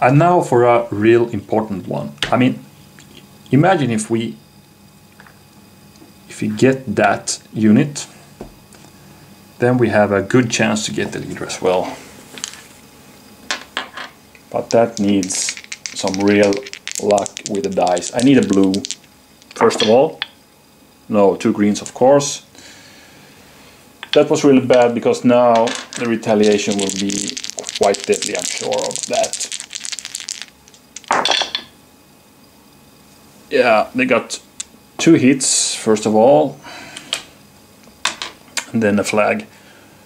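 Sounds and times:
dice clacking in tray: 0:14.6 - 0:20.0, 0:25.6 - 0:31.6.

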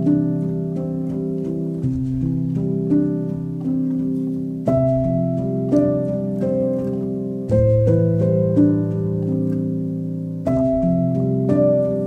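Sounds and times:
slow soft piano piece: 0:00.0 - 0:12.0.

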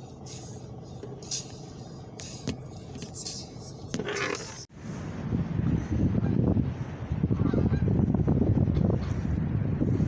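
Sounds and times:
wind rumble on microphone: 0:04.7 - 0:10.0.

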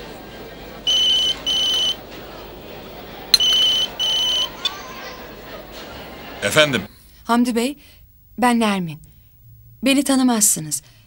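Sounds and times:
mobile phone ringing: 0:00.9 - 0:02.0, 0:03.4 - 0:04.8.

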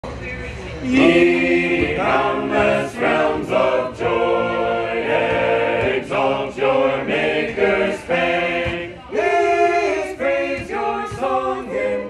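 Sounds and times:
unaccompanied choir singing: 0:00.8 - 0:12.0.

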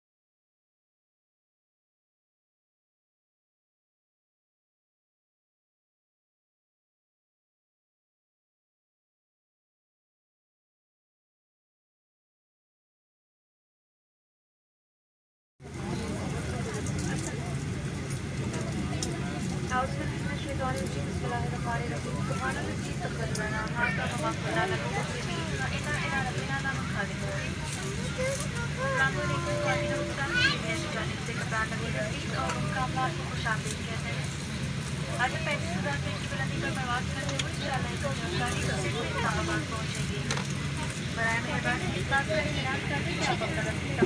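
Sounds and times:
passengers chattering: 0:15.7 - 0:44.0.

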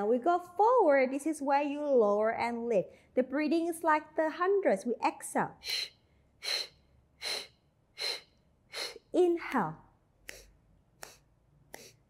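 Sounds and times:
woman's sharp breaths: 0:05.6 - 0:09.1.

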